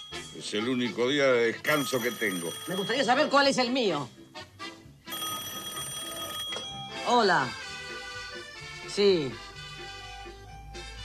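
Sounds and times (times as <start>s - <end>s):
telephone bell ringing: 0.0s - 4.2s, 5.1s - 7.6s.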